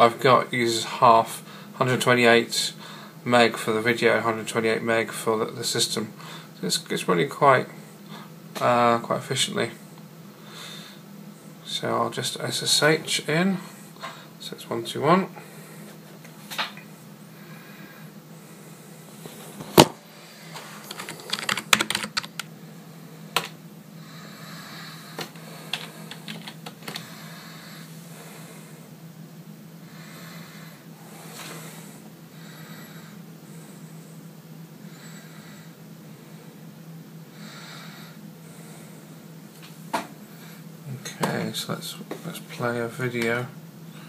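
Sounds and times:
steady low hum: 0.0s - 44.0s
computer keyboard typing: 20.9s - 22.5s, 25.7s - 27.0s.

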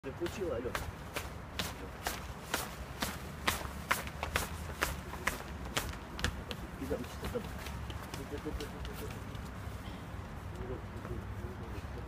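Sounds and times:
footsteps running up stone stairs: 0.7s - 9.6s.

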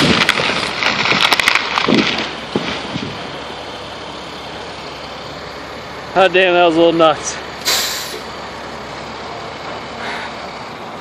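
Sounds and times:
truck engine running: 0.0s - 11.0s.

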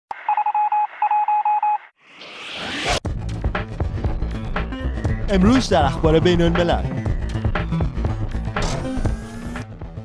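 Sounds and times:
short electronic beeps: 0.2s - 1.9s.

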